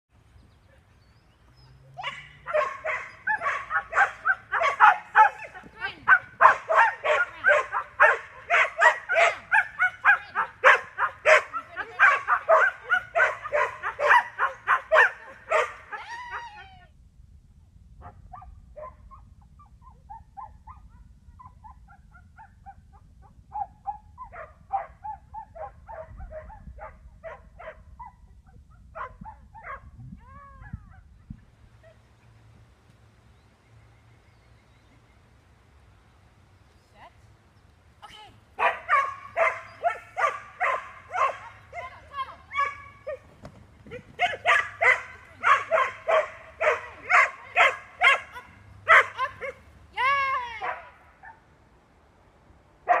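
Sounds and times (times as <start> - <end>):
dog barking rapidly: 2.0 - 16.0, 38.6 - 43.2, 43.9 - 49.6.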